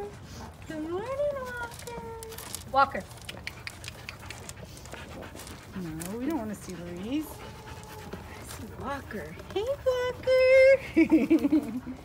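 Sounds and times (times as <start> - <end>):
bull crunching grain: 1.6 - 10.0.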